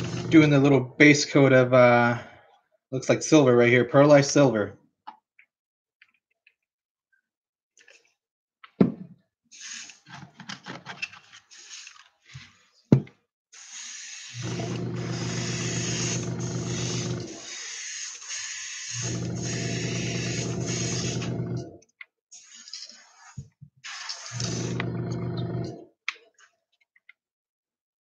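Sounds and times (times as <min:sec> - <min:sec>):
air compressor motor humming: 0:00.0 - 0:00.7, 0:13.7 - 0:21.8, 0:24.3 - 0:25.8
airbrush air puffs: 0:09.6 - 0:10.0, 0:13.6 - 0:21.6, 0:22.4 - 0:25.0
airbrush spray hiss: 0:13.6 - 0:14.4, 0:15.1 - 0:21.2.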